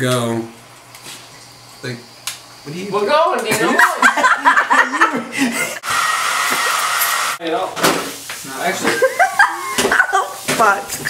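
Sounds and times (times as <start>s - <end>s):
hair dryer blowing: 5.4s - 7.4s.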